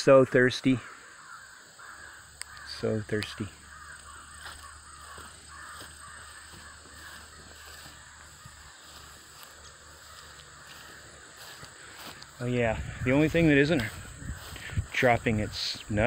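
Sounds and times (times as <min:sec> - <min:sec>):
harsh animal calling: 0:00.8 - 0:14.9.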